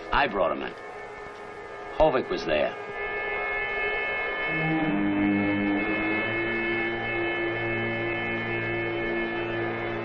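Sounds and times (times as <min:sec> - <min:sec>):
high-pitched hum: 0:00.0 - 0:10.0
low wind instrument notes: 0:00.0 - 0:10.0.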